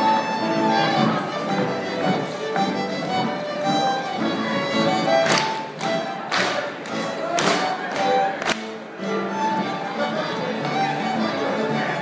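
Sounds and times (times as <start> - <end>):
folk dance band with fiddle: 0.0 - 12.0.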